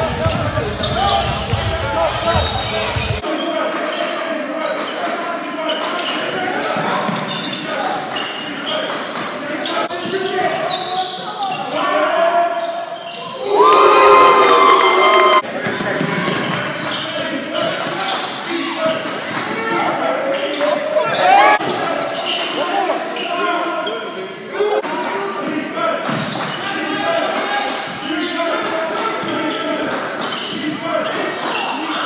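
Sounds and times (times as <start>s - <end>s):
ball bouncing on hardwood court: 0.0s - 3.2s
voices echoing in a hall: 0.0s - 32.0s.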